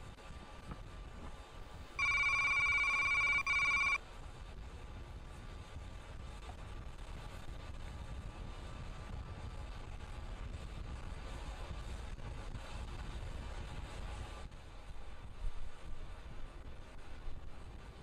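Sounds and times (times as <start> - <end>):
low rumble and hiss: 0.0 - 18.0
loud electronic beep: 2.0 - 4.0.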